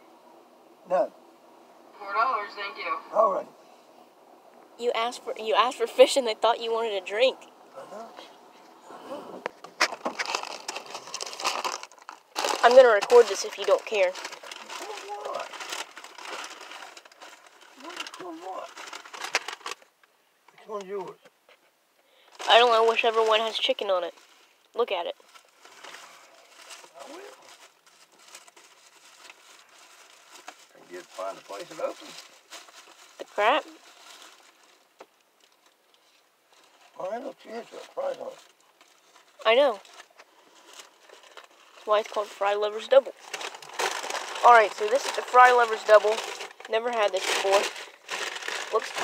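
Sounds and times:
paper bag rustling and crinkling: 9.5s - 19.9s, 22.3s - 49.0s
person speaking: 12.6s - 14.2s.

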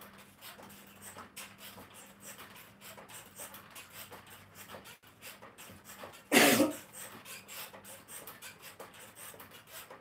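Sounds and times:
mini stepper creaking: 0.0s - 10.0s
person coughing: 6.3s - 6.8s.

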